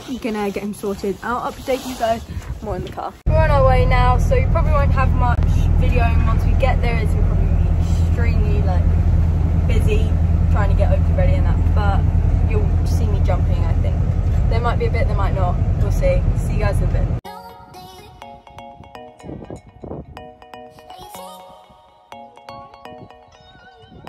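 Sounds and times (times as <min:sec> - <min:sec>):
lorry engine droning: 0:03.3 - 0:17.2.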